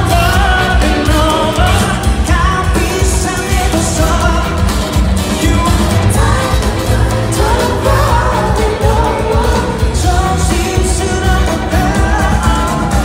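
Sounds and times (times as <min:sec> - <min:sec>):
band with heavy bass and drums: 0:00.0 - 0:13.0
man singing into microphone: 0:00.0 - 0:13.0.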